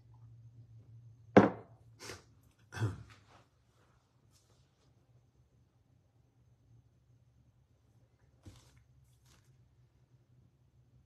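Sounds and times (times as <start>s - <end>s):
mug knocking on hard surface: 1.4s - 1.7s.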